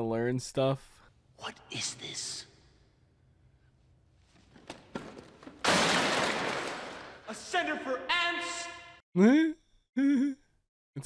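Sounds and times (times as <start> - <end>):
model smashing crash and clatter: 5.0 - 7.2.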